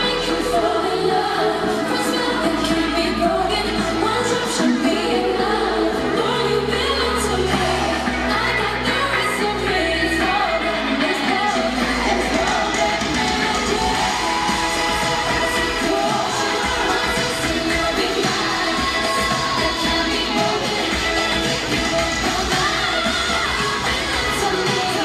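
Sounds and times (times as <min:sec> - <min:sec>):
female vocal group singing: 0:00.0 - 0:25.0
band backing track: 0:01.7 - 0:25.0.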